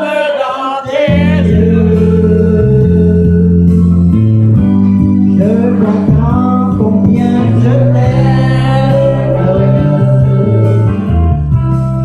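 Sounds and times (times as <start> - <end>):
man singing into a microphone: 0.0 - 3.9, 5.3 - 11.1
karaoke backing track: 0.0 - 12.0.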